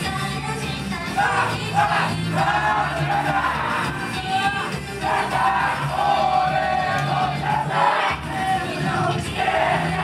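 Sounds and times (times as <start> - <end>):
pop song over speakers: 0.0 - 10.0
crowd chanting in unison: 1.2 - 10.0.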